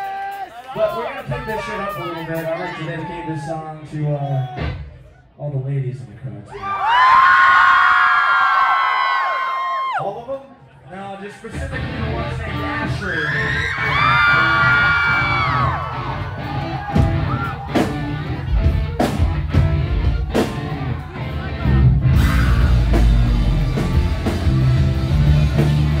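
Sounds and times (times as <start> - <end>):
crowd yelling and cheering: 0.0 - 5.3, 6.5 - 10.9, 11.5 - 26.0
loud live rock band: 11.5 - 26.0
drum hits: 16.8 - 20.7.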